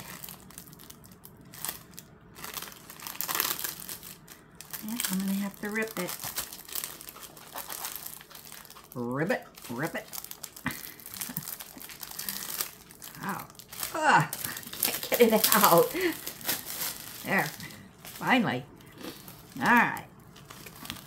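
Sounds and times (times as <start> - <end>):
plastic packaging crinkling: 0.0 - 21.0.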